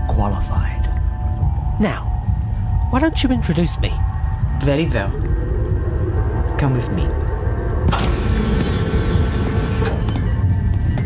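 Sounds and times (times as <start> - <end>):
low mechanical rumble: 1.0 - 11.0.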